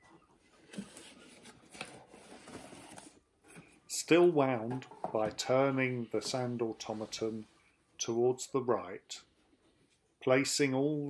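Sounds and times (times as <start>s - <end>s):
cardboard box rustling and scraping: 0.7s - 3.2s.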